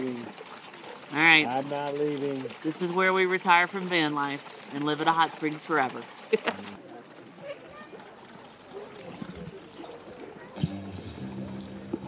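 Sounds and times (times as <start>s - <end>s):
flowing water: 0.0s - 10.7s
faint distant voices: 6.1s - 12.0s.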